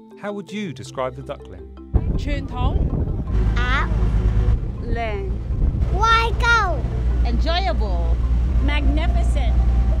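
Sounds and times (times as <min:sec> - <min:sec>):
boat engine rumble: 0:02.0 - 0:10.0.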